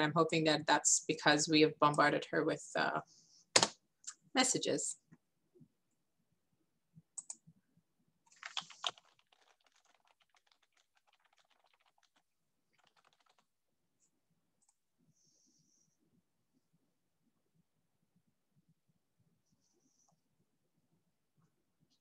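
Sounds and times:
typing on computer keyboard: 8.3 - 13.5.

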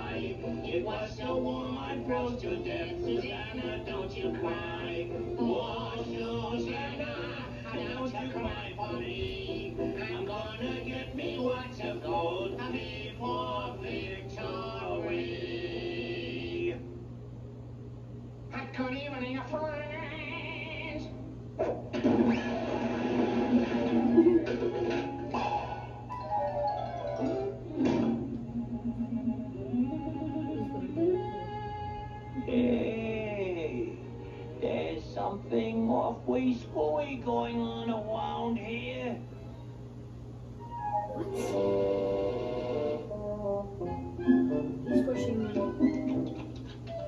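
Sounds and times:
cartoon music from a tv: 0.0 - 16.9, 19.6 - 33.1, 40.6 - 47.0.

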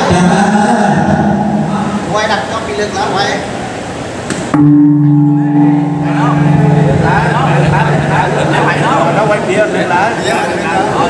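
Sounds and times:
people's voices: 0.0 - 3.8, 5.1 - 11.0
large gong ringing: 1.0 - 2.3, 4.5 - 11.0.

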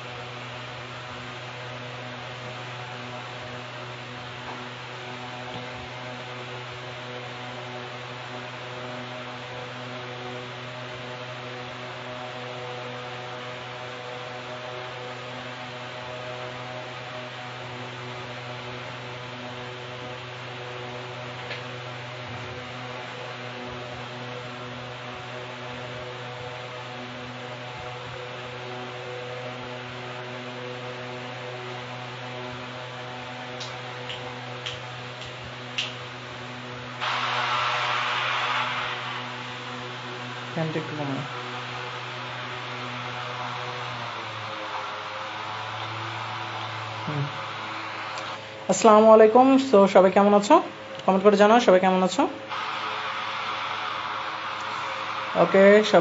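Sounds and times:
constant hiss: 0.0 - 56.0
electrical hum: 0.0 - 56.0
loud noise: 36.6 - 49.7, 52.2 - 56.0.

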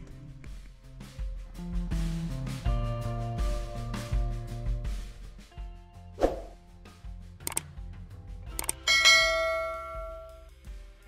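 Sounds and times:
short whoosh: 6.2 - 6.6
mouse clicks: 8.6 - 8.8
bell ding: 8.8 - 10.4.

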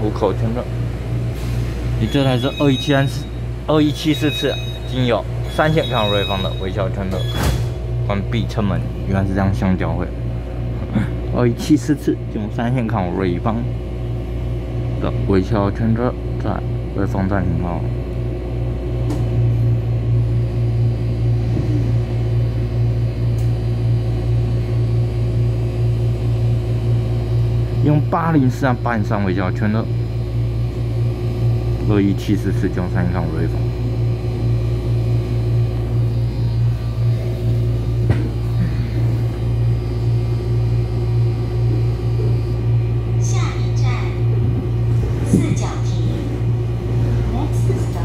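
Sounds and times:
electric train hum and rumble: 0.0 - 48.0.

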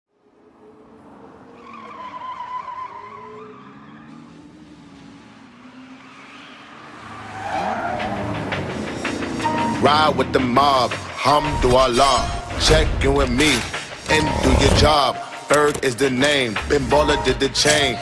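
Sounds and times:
tyre squeal: 1.6 - 4.2
car engine revving: 2.9 - 11.2, 12.7 - 18.0
rap vocals: 9.6 - 18.0.

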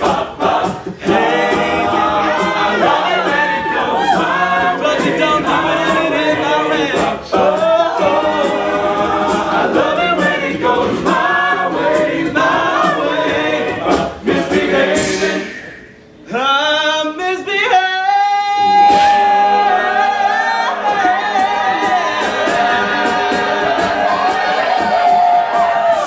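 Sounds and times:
vocal percussion hits: 0.0 - 16.6, 18.6 - 19.9
male group singing in harmony: 0.0 - 16.9, 18.6 - 26.0.

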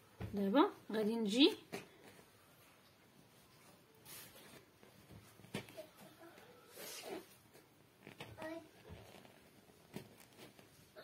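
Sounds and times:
fabric rustling: 1.7 - 11.0
thread drawn through cloth: 8.0 - 10.7.

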